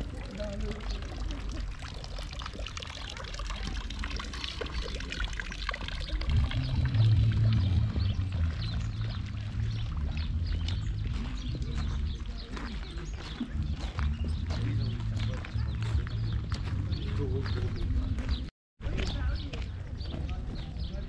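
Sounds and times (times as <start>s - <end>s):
water pouring into stone trough: 0.0s - 16.1s
low rumble: 5.8s - 18.5s.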